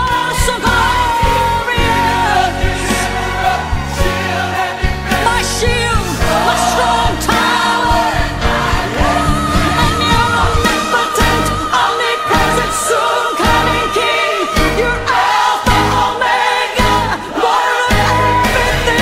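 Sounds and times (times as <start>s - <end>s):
congregation singing with band: 0.0s - 19.0s.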